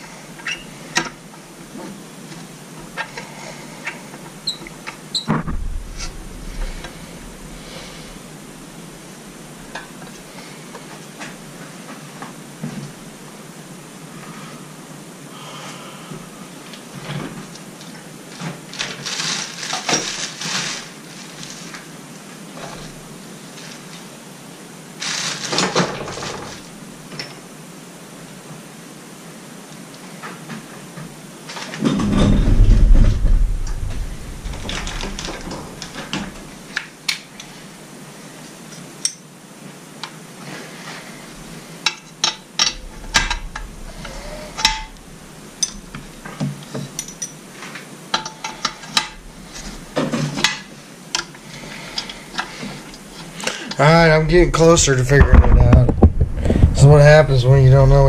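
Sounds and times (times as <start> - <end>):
heavy low bump: 5.3 - 9.7, 31.8 - 36.6, 42.8 - 46.2, 54.2 - 57.6.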